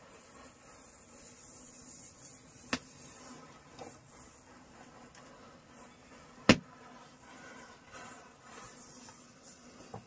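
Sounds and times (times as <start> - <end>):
matchsticks fizzing alight: 0.0 - 10.0.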